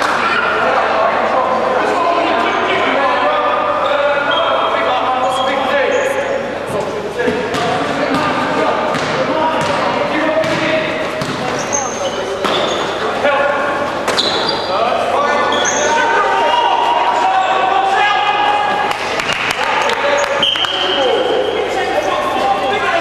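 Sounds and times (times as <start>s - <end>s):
basketball bouncing: 7.3s - 11.6s
shoes squeaking on court: 10.4s - 13.2s, 13.9s - 16.1s.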